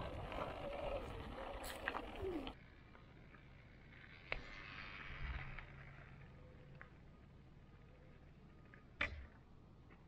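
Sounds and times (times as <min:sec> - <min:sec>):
tyres crunching on gravel: 0:00.0 - 0:02.6
faint outdoor ambience: 0:00.0 - 0:10.0.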